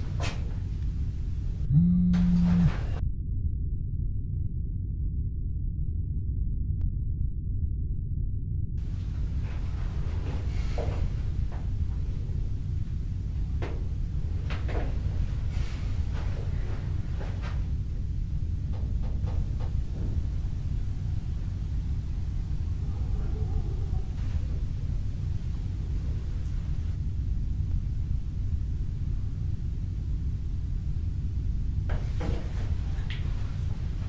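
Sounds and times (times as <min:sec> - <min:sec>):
steady low rumble: 0:00.0 - 0:34.0.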